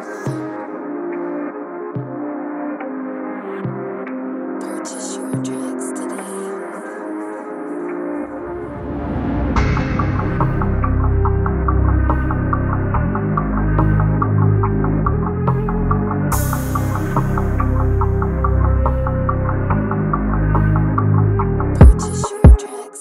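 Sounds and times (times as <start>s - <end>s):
rushing noise sweep: 8.2s - 12.5s
low droning bass notes: 8.4s - 22.3s
hard drum hits: 8.5s - 12.2s.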